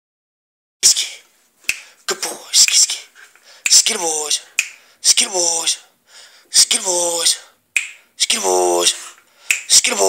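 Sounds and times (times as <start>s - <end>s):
person hissing command: 2.1s - 5.9s.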